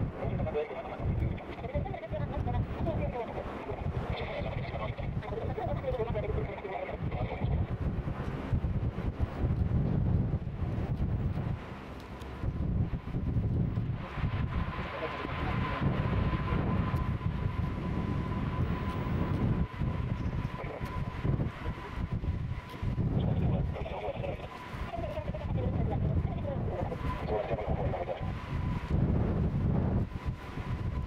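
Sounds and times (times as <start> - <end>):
steady high whine: 0.0 - 31.0
turboprop engines running: 0.0 - 31.0
wind rumble on microphone: 0.0 - 31.0.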